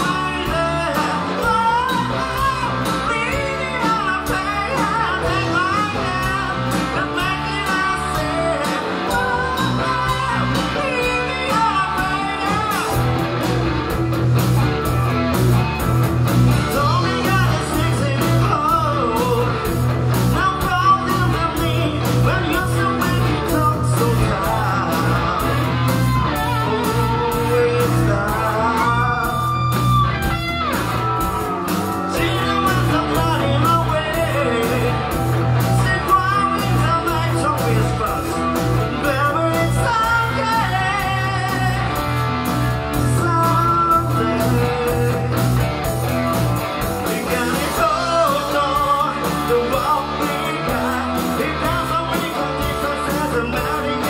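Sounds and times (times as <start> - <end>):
lead singer's voice: 0.0 - 14.0, 16.5 - 54.0
drums beat: 0.0 - 54.0
electric guitars: 0.0 - 54.0.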